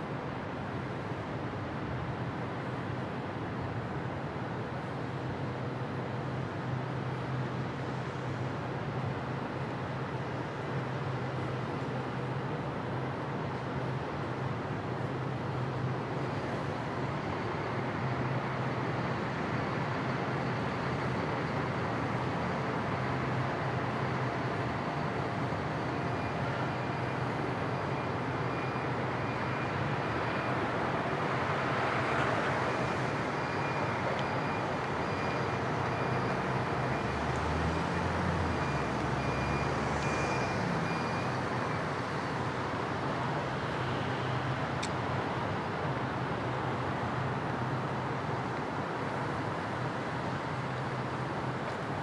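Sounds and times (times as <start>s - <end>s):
city road traffic: 0.0s - 52.0s.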